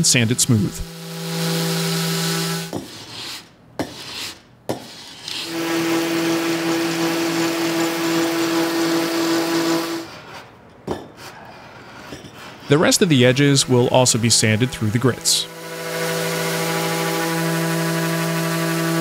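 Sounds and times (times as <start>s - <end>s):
electric sander humming: 0.4s - 2.8s, 5.4s - 10.1s, 13.0s - 19.0s.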